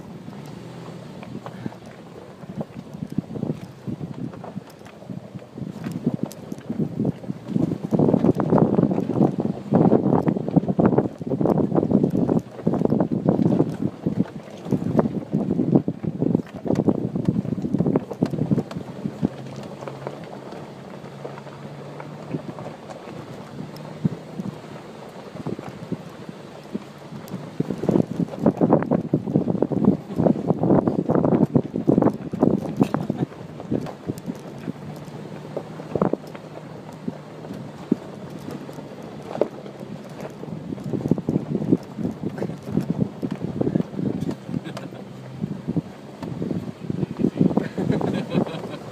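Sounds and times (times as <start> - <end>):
car engine hum: 0.0 - 48.9
knocking and rattling over rocks: 0.0 - 48.9.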